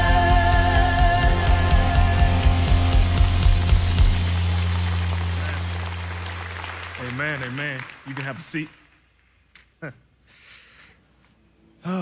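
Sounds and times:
live band drums and bass: 0.0s - 7.0s.

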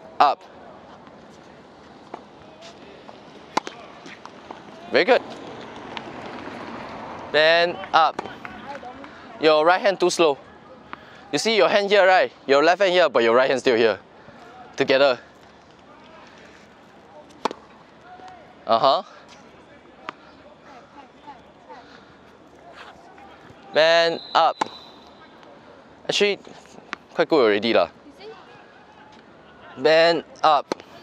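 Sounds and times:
faint outdoor court noise: 0.0s - 31.0s
tennis racket striking ball: 3.5s - 4.2s, 17.4s - 17.6s.

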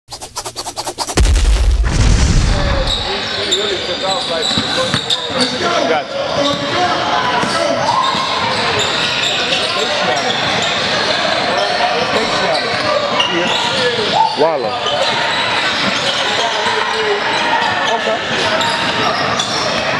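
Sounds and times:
deep boom: 1.2s - 3.2s.

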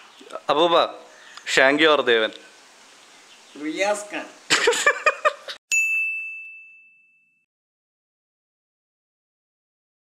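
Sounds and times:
bell-like chime ding: 5.7s - 7.5s.

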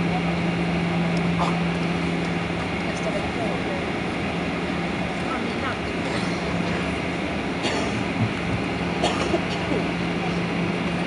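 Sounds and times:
airplane cabin noise: 0.0s - 11.0s
low engine drone: 0.0s - 11.0s.

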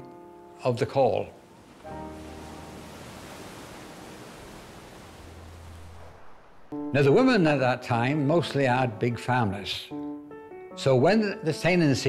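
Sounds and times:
soft background music: 0.0s - 4.5s, 6.7s - 12.0s
low hum: 4.3s - 6.9s.

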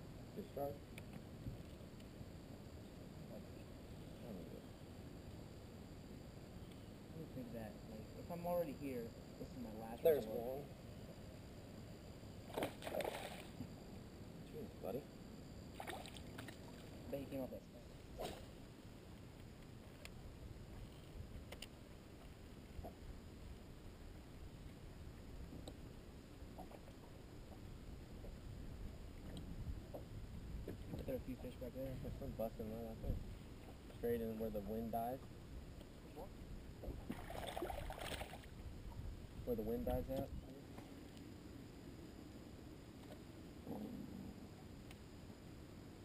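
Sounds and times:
small waves lapping against hull: 12.4s - 13.8s, 15.7s - 17.2s, 36.4s - 39.3s
wind rumble: 27.4s - 33.9s, 35.0s - 40.6s
water lapping against hull: 36.8s - 39.0s.

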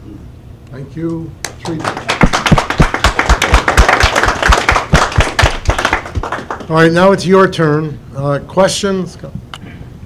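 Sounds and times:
loud close claps: 1.4s - 6.8s
audience applauding: 1.5s - 6.9s.

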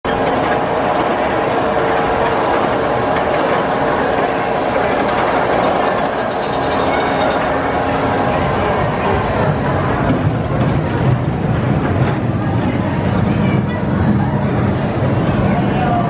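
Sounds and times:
roller coaster rumbling on track: 0.1s - 16.0s.

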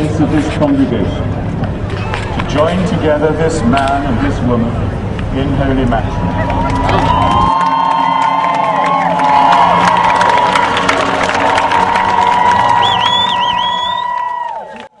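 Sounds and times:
large crowd cheering: 6.0s - 15.0s.

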